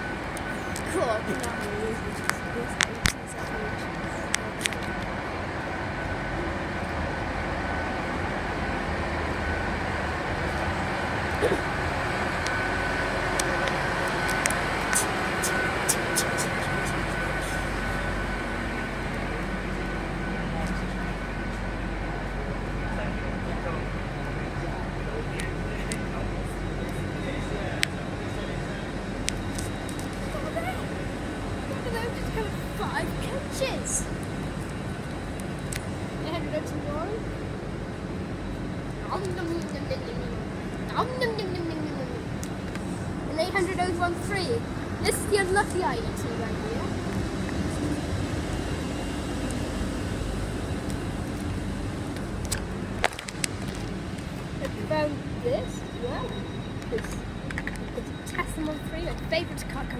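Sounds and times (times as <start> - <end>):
train engine drone and whine: 0.0 - 59.9.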